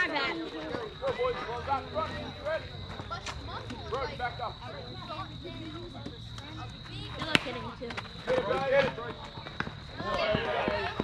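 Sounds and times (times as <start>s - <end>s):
spectators talking: 0.0s - 11.0s.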